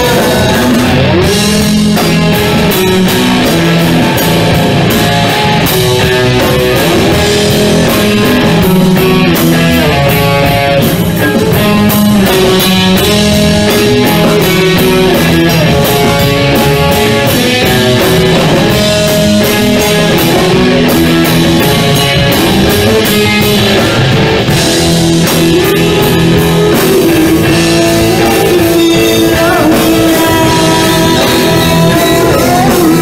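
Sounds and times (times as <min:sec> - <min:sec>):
bass guitar: 0:00.0 - 0:33.0
drum kit beat: 0:00.0 - 0:33.0
electric guitar: 0:00.0 - 0:33.0.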